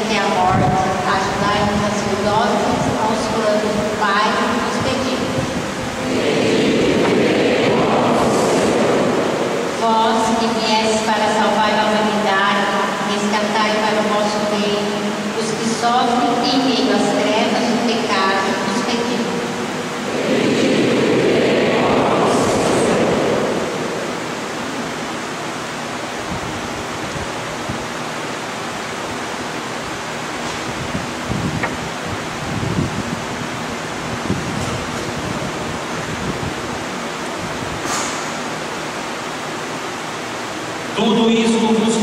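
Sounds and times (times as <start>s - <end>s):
church room noise hiss: 0.0s - 42.0s
congregation noise: 0.0s - 42.0s.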